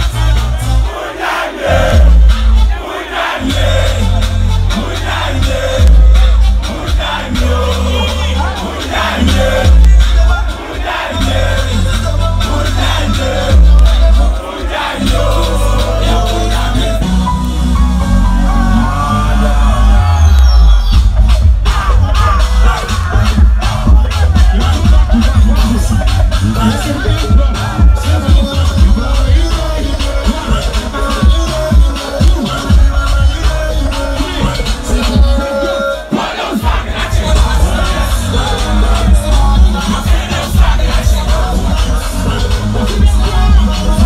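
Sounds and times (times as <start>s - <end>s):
crowd shouting along: 0.0s - 17.1s, 17.8s - 44.0s
loud live music with bass beat: 0.0s - 44.0s.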